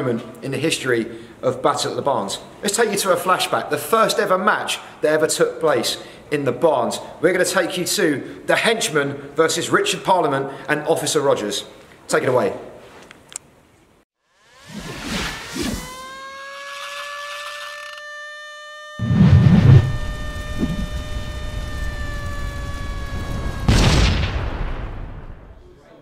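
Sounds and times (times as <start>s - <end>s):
long held tone: 15.7s - 23.7s
whooshes: 19.0s - 20.9s
hit sound effect: 19.0s - 21.0s
deep boom: 23.4s - 25.6s.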